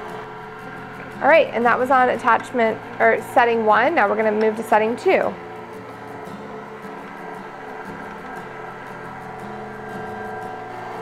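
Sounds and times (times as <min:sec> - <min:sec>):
stand mixer motor running: 0:00.0 - 0:11.0.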